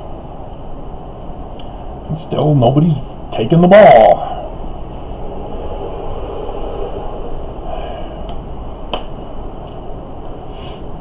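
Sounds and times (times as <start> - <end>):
low rumbling room noise: 0.0 - 11.0.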